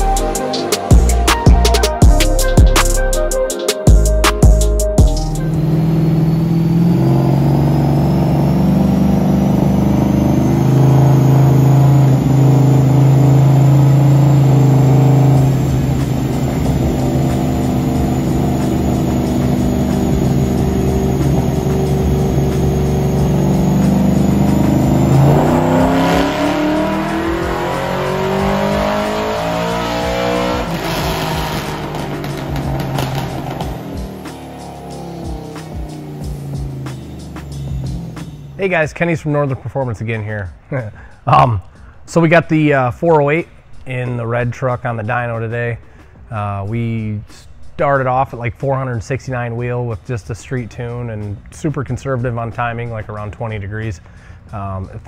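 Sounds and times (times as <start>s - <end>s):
truck engine revving on dyno: 5.4s - 38.6s.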